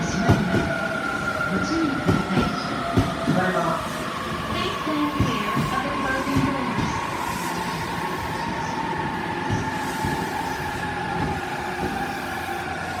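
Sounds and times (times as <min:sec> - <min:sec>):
train wheel and running noise: 0:00.0 - 0:13.0.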